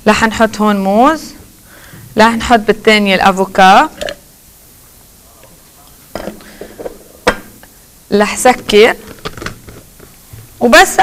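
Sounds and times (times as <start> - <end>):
plastic blender parts knocking: 9.0 - 9.9.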